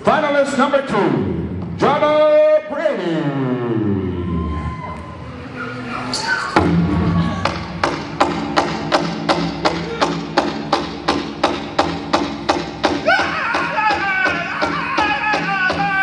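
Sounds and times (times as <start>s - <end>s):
powwow drum beating: 6.6s - 16.0s.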